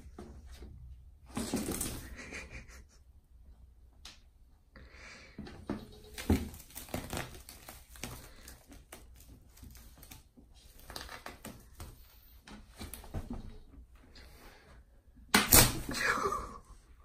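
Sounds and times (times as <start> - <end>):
cling film crinkling: 6.2 - 11.8.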